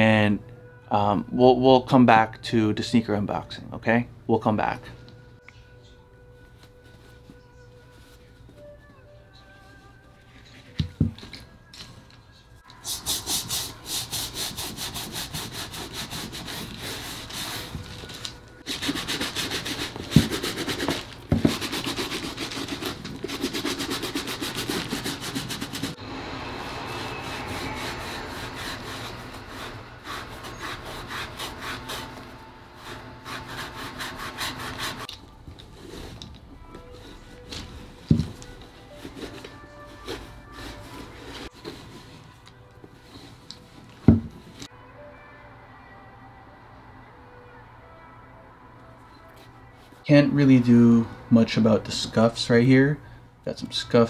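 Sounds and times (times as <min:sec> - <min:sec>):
brush scrubbing leather shoe: 0:12.8 - 0:18.0, 0:18.7 - 0:26.0, 0:26.7 - 0:35.1, 0:35.7 - 0:42.0.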